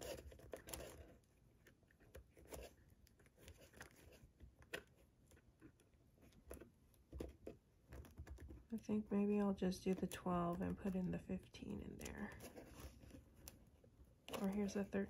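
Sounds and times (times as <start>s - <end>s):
fingers flicking through paper envelopes: 14.3s - 15.0s.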